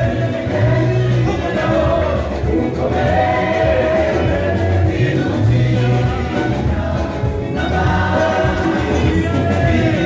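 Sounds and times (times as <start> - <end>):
band with keyboard guitar drums: 0.0 - 10.0
singers in harmony: 0.0 - 10.0.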